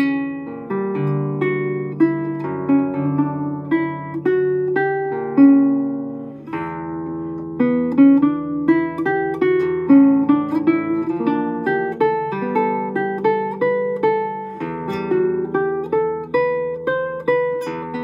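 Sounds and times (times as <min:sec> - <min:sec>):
classical guitar fingerstyle: 0:00.0 - 0:18.0.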